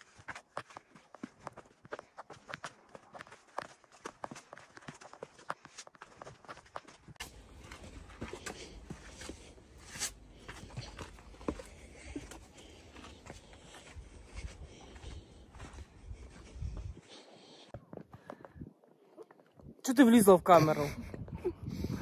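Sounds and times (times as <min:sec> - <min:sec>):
footsteps crunching on stony trail: 0:00.0 - 0:19.3.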